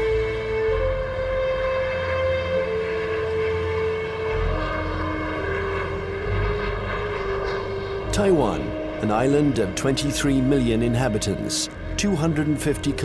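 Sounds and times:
jet airliner engine rumble: 0.0s - 13.0s
music of long held notes: 0.0s - 13.0s.

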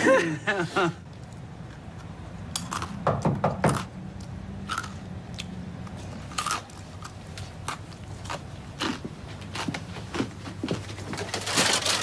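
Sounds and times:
crunchy clicks and rustles: 5.9s - 12.0s.

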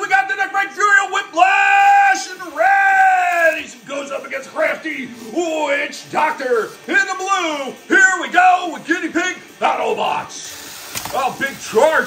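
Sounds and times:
man's voice: 0.0s - 10.5s, 11.1s - 12.0s
steady high hiss: 0.0s - 12.0s
loud harsh noisy burst: 10.4s - 12.0s.

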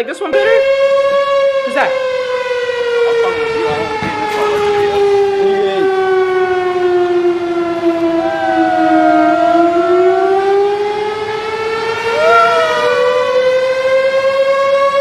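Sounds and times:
siren wailing: 0.3s - 15.0s.

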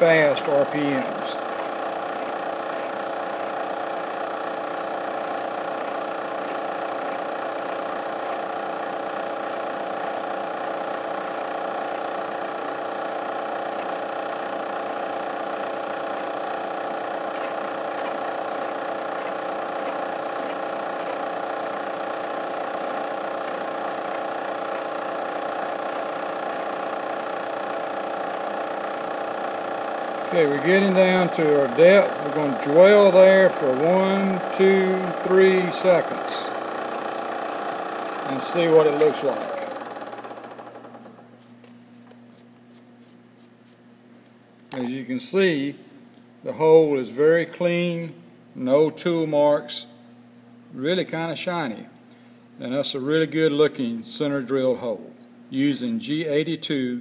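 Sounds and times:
milling machine humming: 0.0s - 48.9s.

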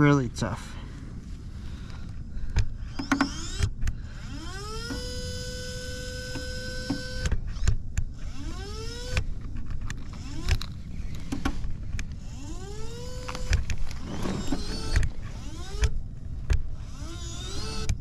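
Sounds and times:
winch motor whine: 2.1s - 18.0s.

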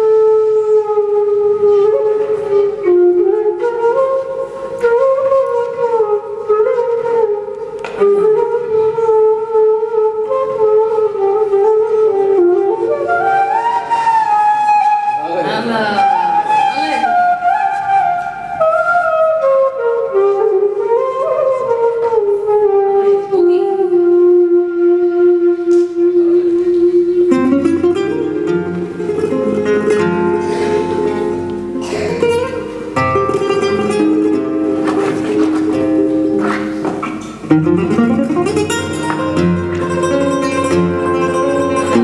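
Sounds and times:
flute playing flamenco melody: 0.0s - 42.0s
guitar accompaniment: 0.0s - 42.0s.

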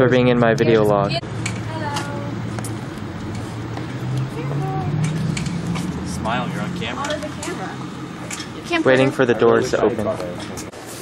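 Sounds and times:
traffic hum: 0.0s - 11.0s.

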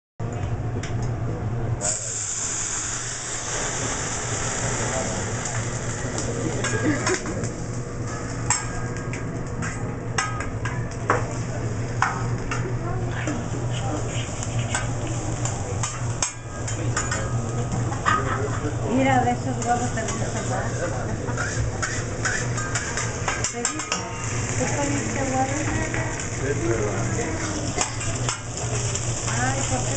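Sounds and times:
liquid hissing on hot plate: 1.8s - 7.2s
food sizzling on a griddle: 1.8s - 9.0s, 11.2s - 29.9s
metal utensils striking griddle: 8.1s - 11.4s, 14.5s - 18.8s, 19.5s - 29.9s.

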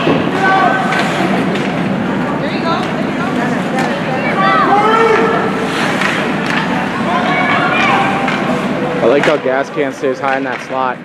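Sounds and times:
skates on ice: 0.0s - 9.5s.

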